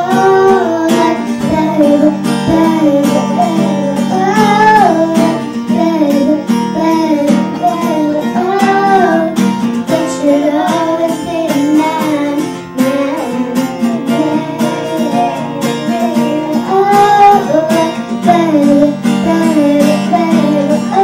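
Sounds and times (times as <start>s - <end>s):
girls singing: 0.0s - 21.0s
strummed acoustic guitar: 0.0s - 21.0s.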